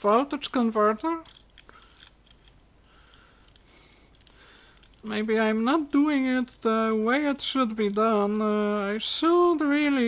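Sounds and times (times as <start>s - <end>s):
wires and plastic handled: 0.0s - 10.0s.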